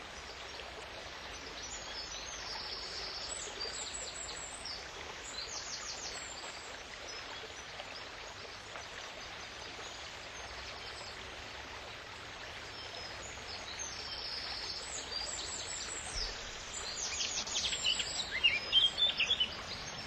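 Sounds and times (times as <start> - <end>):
river water rushing: 0.0 - 20.0
birds singing: 13.6 - 20.0.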